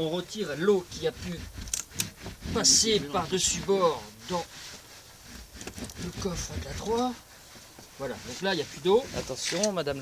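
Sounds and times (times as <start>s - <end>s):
cloth rubbing rubber mat: 0.3s - 10.0s.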